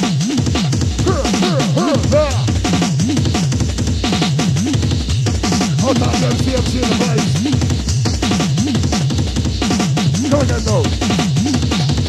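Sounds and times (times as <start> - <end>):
jungle rave music: 0.0 - 12.0.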